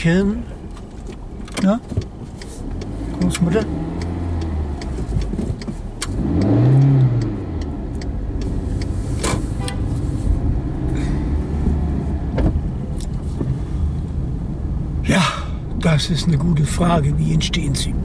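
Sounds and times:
road noise inside car: 0.0s - 18.0s
sharp clicks: 0.8s - 9.4s
car engine revving: 1.1s - 18.0s.

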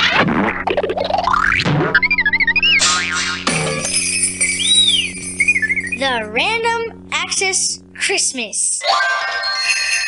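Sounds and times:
boing-like burst: 0.0s - 4.0s
warbling tone: 0.0s - 6.3s
bright chiming high tones: 3.6s - 6.2s, 8.8s - 10.0s
rising whistle-like glide: 4.3s - 6.0s.

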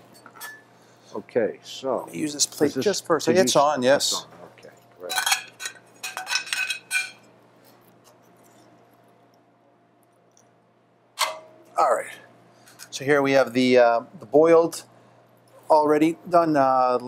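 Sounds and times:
metal tongs clinking on pans: 5.0s - 7.2s.

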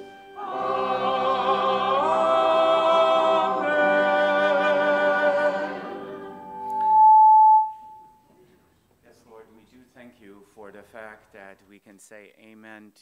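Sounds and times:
church choir singing: 0.0s - 7.6s
microphone feedback squeal: 6.4s - 8.3s.

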